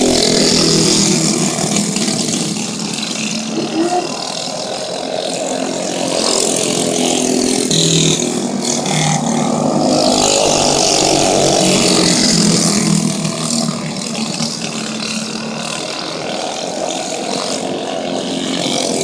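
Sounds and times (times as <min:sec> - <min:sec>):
go-kart engines racing: 0:00.0 - 0:19.0.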